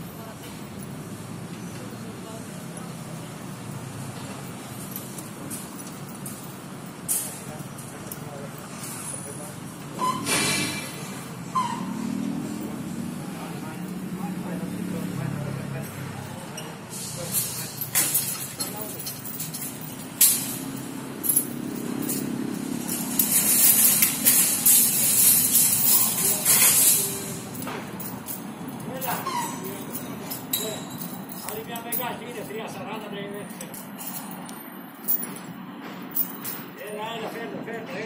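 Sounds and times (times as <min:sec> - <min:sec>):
workers' voices: 0:00.0 - 0:38.0
metal knocks and clinks: 0:17.4 - 0:32.6, 0:33.5 - 0:36.8.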